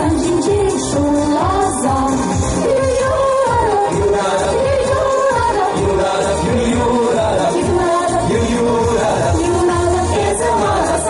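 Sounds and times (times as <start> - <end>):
accompaniment with steady beat: 0.0 - 11.0
person singing pop song live: 0.0 - 11.0.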